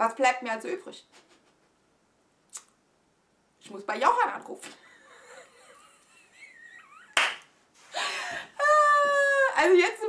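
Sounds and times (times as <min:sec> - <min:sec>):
woman laughing: 0:04.8 - 0:07.2
sharp slap: 0:07.2 - 0:07.5.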